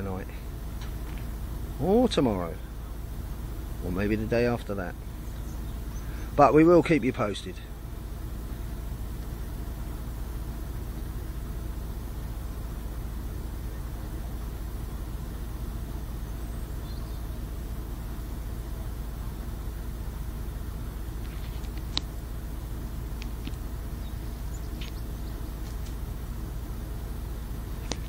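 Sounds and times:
low outdoor rumble: 0:00.0 - 0:28.0.

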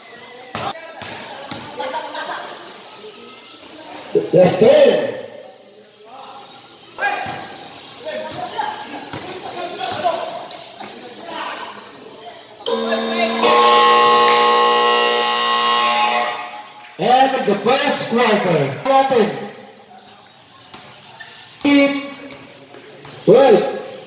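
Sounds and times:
voices echoing: 0:00.0 - 0:24.0
ball bouncing on court: 0:00.5 - 0:01.8
electric game buzzer: 0:12.7 - 0:16.7.

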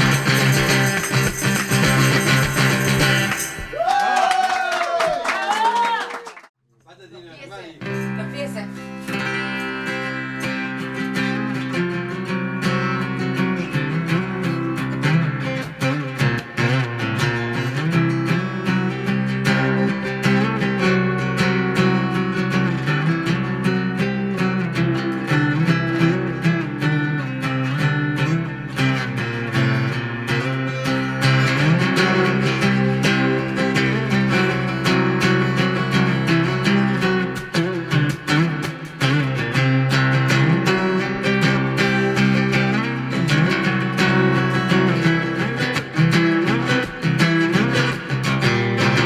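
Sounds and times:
slide acoustic guitar: 0:00.0 - 0:03.7, 0:07.2 - 0:49.0.

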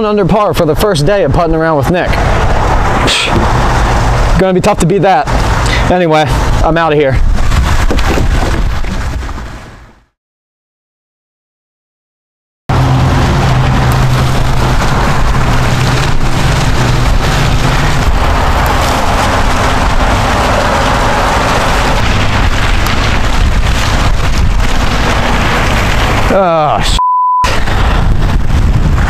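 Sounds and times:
loud steady rushing noise: 0:00.0 - 0:09.9, 0:12.7 - 0:29.0.

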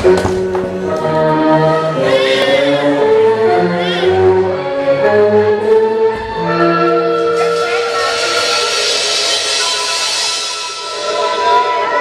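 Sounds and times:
wavering high note: 0:06.2 - 0:12.0.

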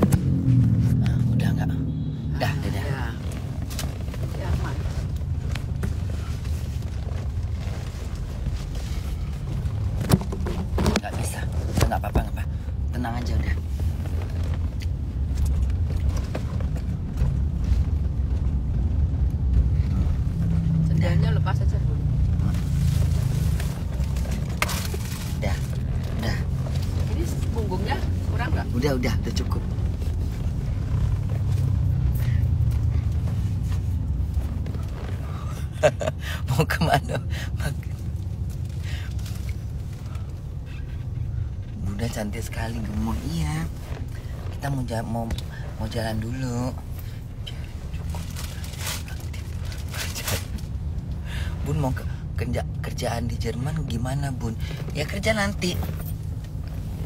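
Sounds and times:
van engine and road noise: 0:00.0 - 0:57.0.

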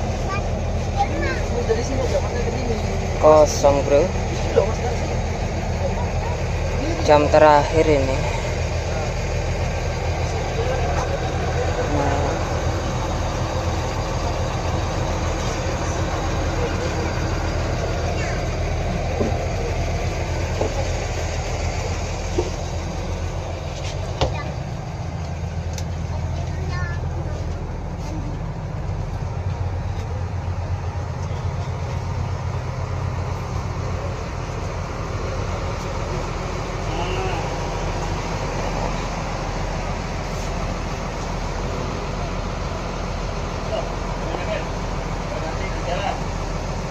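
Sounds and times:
diesel bus engine idling: 0:00.0 - 0:46.9.

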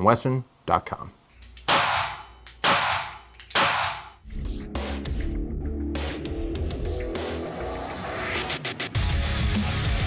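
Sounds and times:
music with low steady beat: 0:04.2 - 0:07.5.

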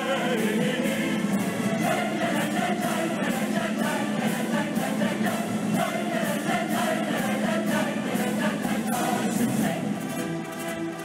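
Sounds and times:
choir singing a march: 0:00.0 - 0:11.0
symphony orchestra: 0:00.0 - 0:11.0.

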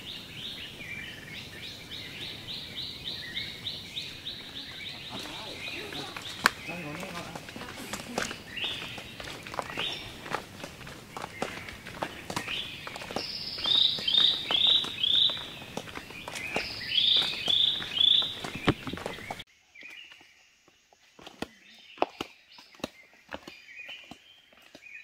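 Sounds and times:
bird calling: 0:00.0 - 0:19.4
footsteps on paved path: 0:00.0 - 0:25.0.

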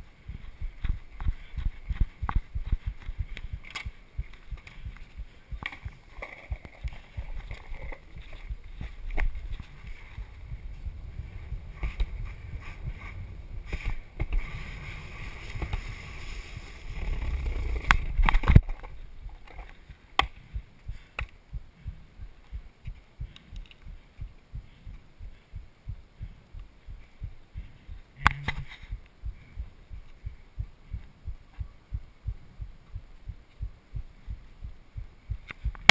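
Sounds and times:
skateboard wheels rolling on concrete: 0:00.0 - 0:21.3.

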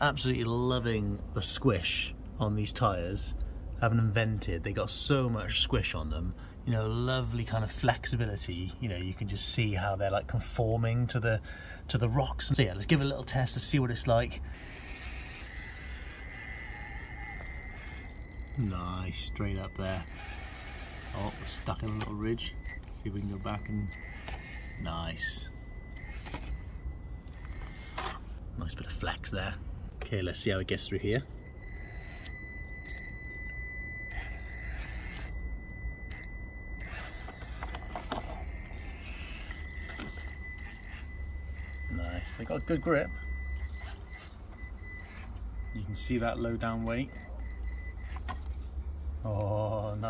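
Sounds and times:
small electric motor whine: 0:14.5 - 0:28.4, 0:31.0 - 0:48.8.

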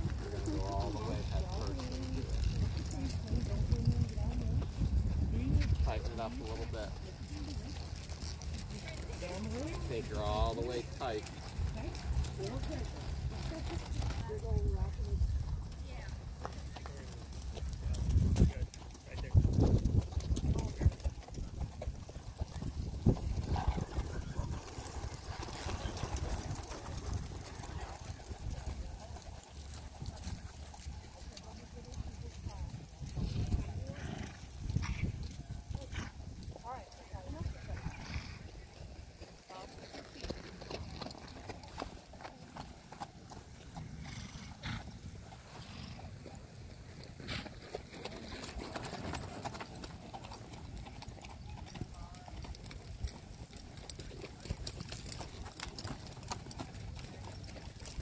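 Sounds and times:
hoofbeats on dirt: 0:00.0 - 0:58.0.

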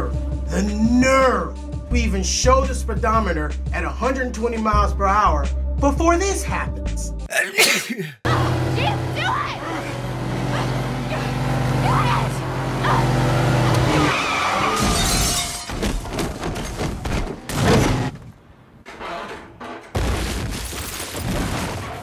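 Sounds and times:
people shouting: 0:08.3 - 0:14.1
engine drone: 0:08.3 - 0:14.8
glass breaking: 0:14.7 - 0:18.1, 0:20.0 - 0:22.0
heavy car impacts: 0:14.7 - 0:22.0.

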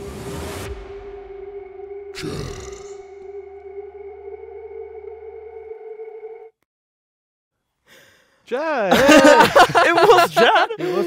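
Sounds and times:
electronic drone tone: 0:00.0 - 0:06.6
low hum: 0:00.0 - 0:06.6.

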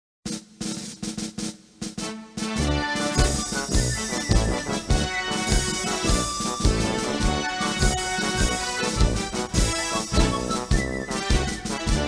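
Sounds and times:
snare drum hits: 0:00.3 - 0:12.0.

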